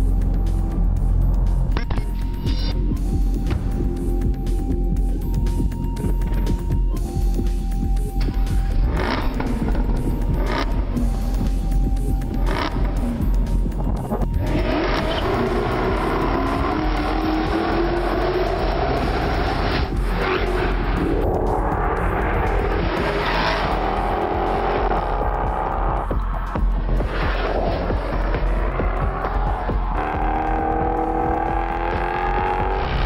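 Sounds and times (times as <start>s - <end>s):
advert music: 0.0s - 33.0s
car engine revving hard: 8.9s - 11.0s, 12.4s - 13.2s, 14.4s - 33.0s.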